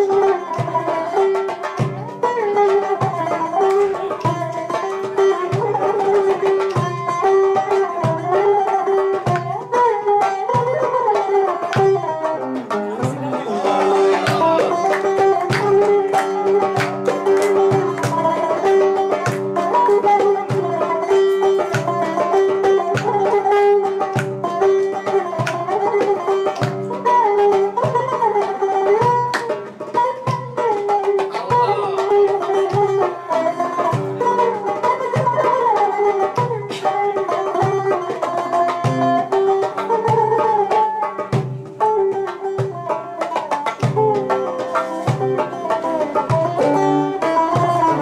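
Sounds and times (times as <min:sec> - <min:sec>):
long-necked lute melody: 0:00.0 - 0:48.0
low drum beat: 0:13.0 - 0:18.4, 0:31.3 - 0:33.0.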